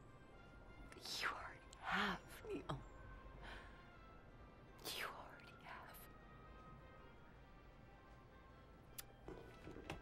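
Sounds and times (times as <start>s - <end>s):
faint music: 0.0s - 10.0s
woman sobbing: 1.9s - 3.9s.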